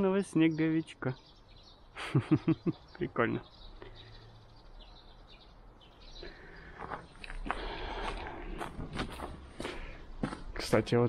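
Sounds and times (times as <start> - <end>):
footsteps on snow: 6.7 - 10.8.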